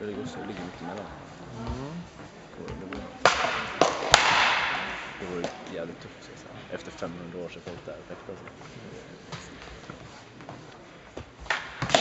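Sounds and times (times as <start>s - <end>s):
hall echo: 0.0s - 6.7s.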